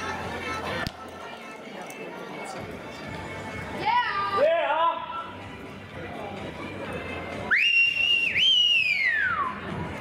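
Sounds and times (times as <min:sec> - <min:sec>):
loud human whistle: 0:07.5 - 0:09.6.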